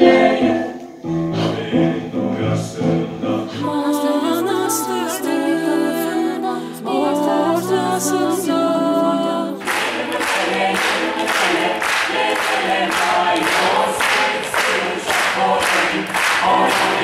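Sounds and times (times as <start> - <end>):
a cappella choir singing: 0.0 - 17.0
singers clapping a beat: 9.6 - 17.0.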